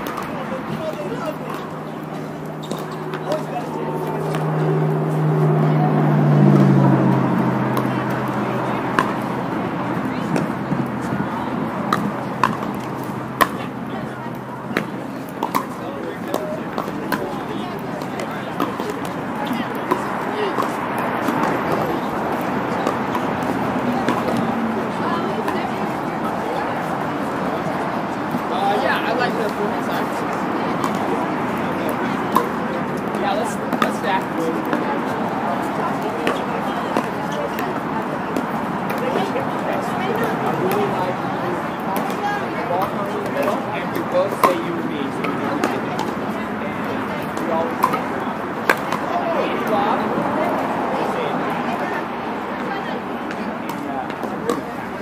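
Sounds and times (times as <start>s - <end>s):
murmur of voices: 0.0s - 55.0s
paddles hitting ball: 47.2s - 49.8s.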